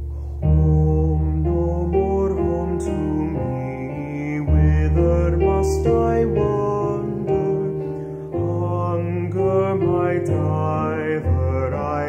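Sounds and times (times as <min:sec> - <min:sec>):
man singing with vibrato: 0:00.0 - 0:12.0.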